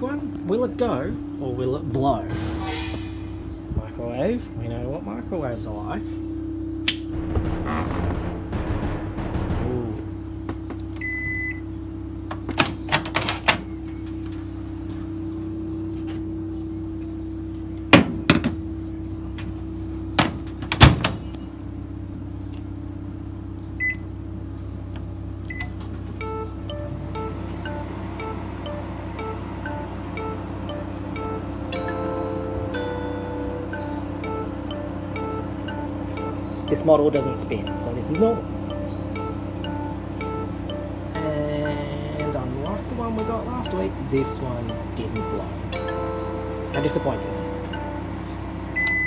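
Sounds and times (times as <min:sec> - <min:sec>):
microwave oven humming: 0:00.0 - 0:02.3, 0:03.7 - 0:49.0
loud thunks: 0:07.0 - 0:11.0, 0:17.9 - 0:18.6
music with plucked notes: 0:07.2 - 0:10.4, 0:26.1 - 0:48.8
keypad beeps: 0:25.5 - 0:26.5, 0:48.8 - 0:49.0.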